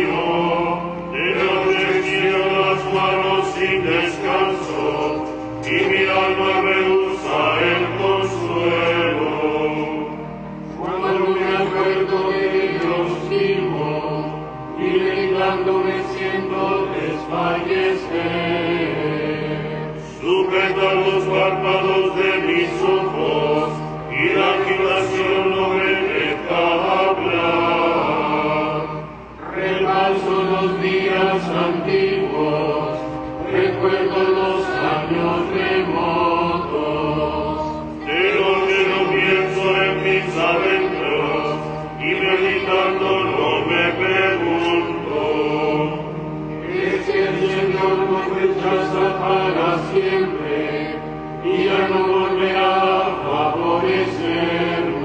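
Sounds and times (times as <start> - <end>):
liturgical chant: 0.0 - 55.0.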